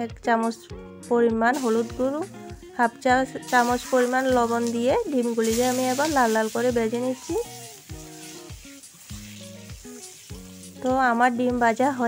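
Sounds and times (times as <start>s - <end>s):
soft background tune: 0.0s - 12.0s
eggs sizzling in hot oil: 1.4s - 12.0s
metal spatula turning food: 3.4s - 11.8s.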